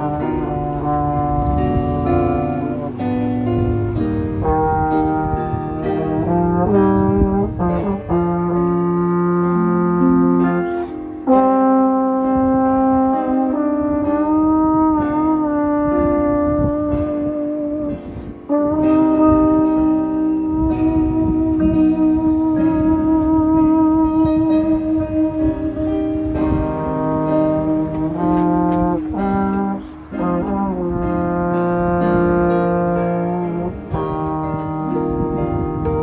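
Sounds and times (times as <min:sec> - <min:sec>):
electric guitar strumming chords: 0:00.0 - 0:08.7, 0:09.4 - 0:36.0
slide trombone melody: 0:00.0 - 0:36.0.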